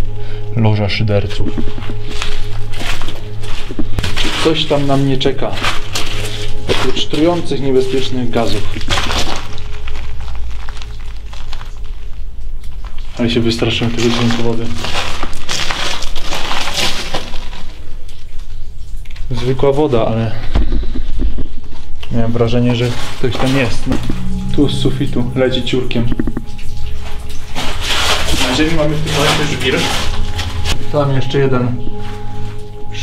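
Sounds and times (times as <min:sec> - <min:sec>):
low steady rumble: 0:00.0 - 0:13.5, 0:20.5 - 0:33.0
water dripping: 0:00.0 - 0:33.0.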